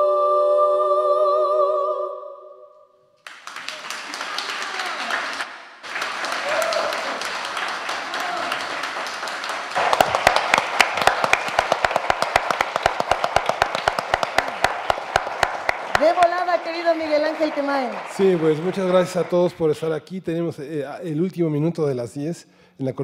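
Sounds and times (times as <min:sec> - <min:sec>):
a cappella singing: 0:00.0 - 0:02.9
audience applauding and cheering: 0:03.2 - 0:19.9
rhythmic clapping in unison: 0:03.2 - 0:19.9.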